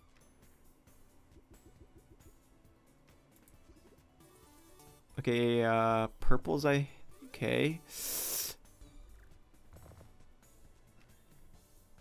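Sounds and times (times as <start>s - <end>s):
faint game music: 0.0s - 12.0s
loud burst of hiss: 8.0s - 8.6s.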